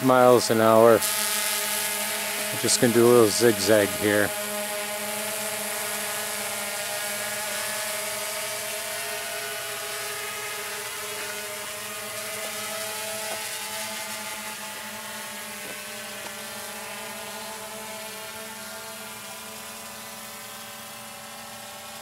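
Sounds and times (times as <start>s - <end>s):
drone propellers whining: 0.0s - 22.0s.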